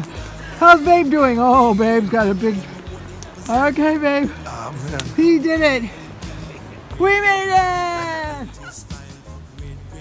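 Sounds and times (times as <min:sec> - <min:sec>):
faint background music: 0:00.0 - 0:10.0
person shouting drawn-out word: 0:07.0 - 0:08.6.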